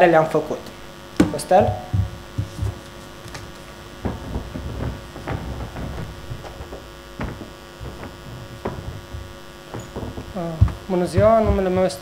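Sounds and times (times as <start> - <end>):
electrical mains hum: 0.0 - 12.0
man's voice: 1.2 - 2.0, 10.4 - 12.0
soft knocks and bumps: 1.2 - 12.0.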